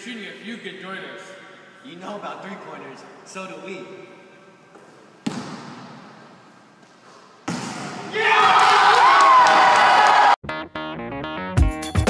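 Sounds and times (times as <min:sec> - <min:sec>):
boys cheering and yelling: 0:08.1 - 0:10.4.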